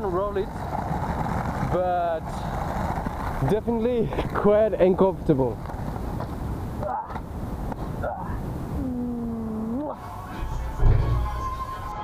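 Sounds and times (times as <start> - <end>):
man humming rising pitch: 8.8 - 12.0.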